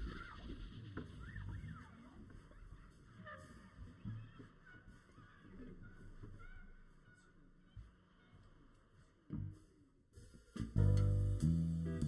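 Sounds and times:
jazz band playing softly: 0:10.6 - 0:12.0.

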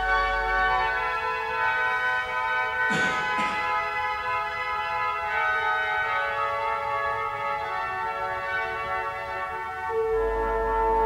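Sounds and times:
pipe organ chords: 0:00.0 - 0:11.0.

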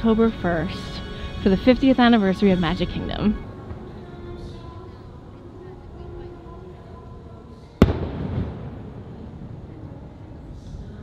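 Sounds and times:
firework shell bursting: 0:07.8 - 0:09.9.

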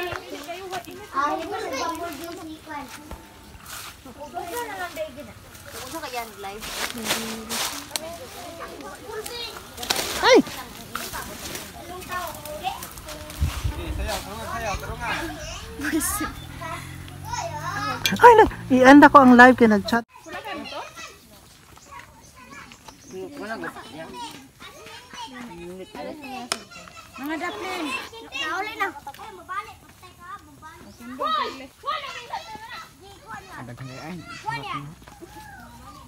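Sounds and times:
children and adults talking: 0:00.0 - 0:36.0.

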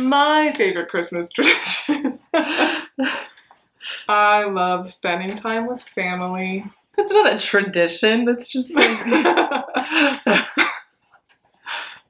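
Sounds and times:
young women laughing: 0:01.4 - 0:03.3, 0:08.7 - 0:10.8.

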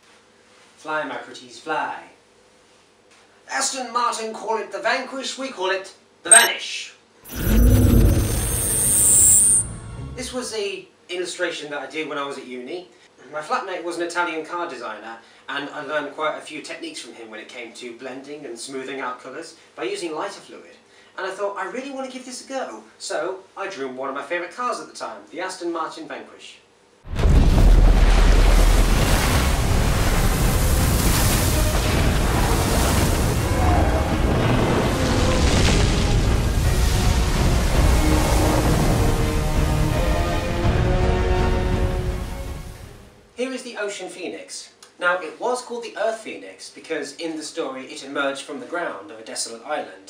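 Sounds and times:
thin high whine: 0:06.3 - 0:06.5, 0:07.3 - 0:10.6
deep rumbling whoosh: 0:07.3 - 0:10.4.

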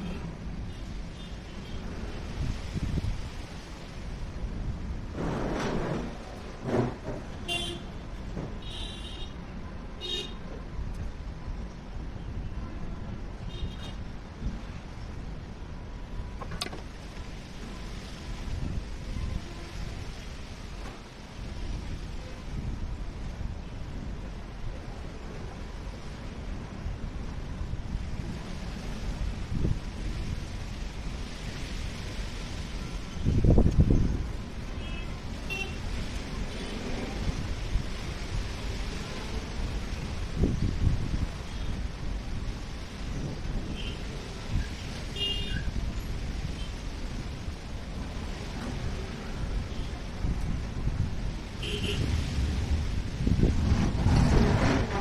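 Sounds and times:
road traffic rumble: 0:00.0 - 0:55.0
vehicle horn toots: 0:07.4 - 0:07.9, 0:51.6 - 0:52.1.

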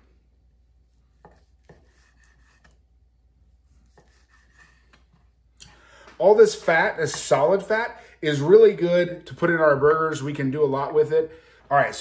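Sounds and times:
knife scraping on wooden board: 0:00.9 - 0:02.9, 0:03.6 - 0:05.4.

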